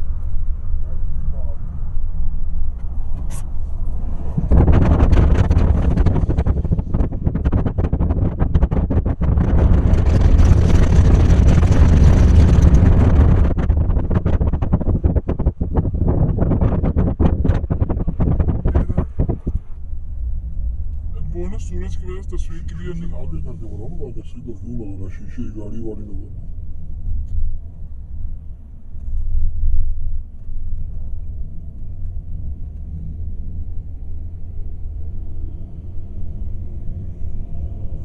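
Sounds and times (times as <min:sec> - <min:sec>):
car tyres and engine rumble: 0:00.0 - 0:38.0
rushing air: 0:01.8 - 0:24.4
person speaking: 0:21.2 - 0:26.3.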